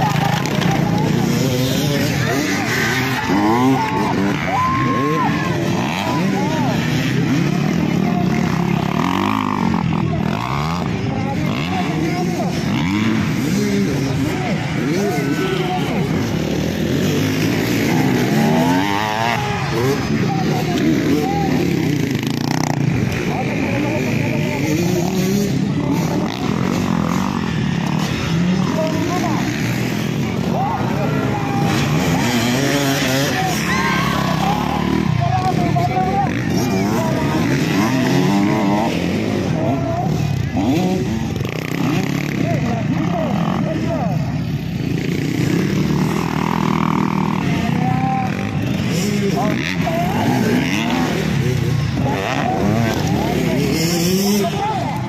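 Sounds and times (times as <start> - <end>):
dirt bike engines revving: 0.0 - 55.0
people's voices: 0.0 - 55.0.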